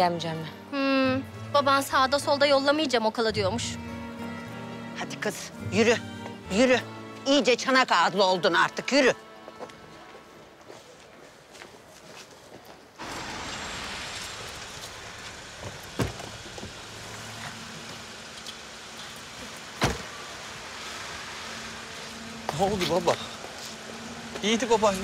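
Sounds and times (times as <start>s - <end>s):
car engine running: 13.0s - 20.7s
car door shutting: 15.6s - 17.5s, 19.7s - 20.2s.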